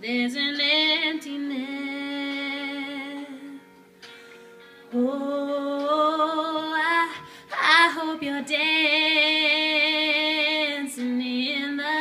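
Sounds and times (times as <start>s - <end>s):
woman singing into microphone: 0.0s - 3.8s, 4.9s - 12.0s.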